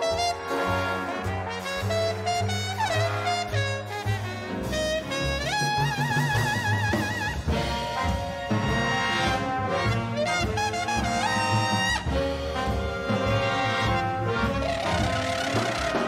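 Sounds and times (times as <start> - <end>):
jazz big band playing swing: 0.0 - 16.0
muted trumpet solo: 0.0 - 16.0.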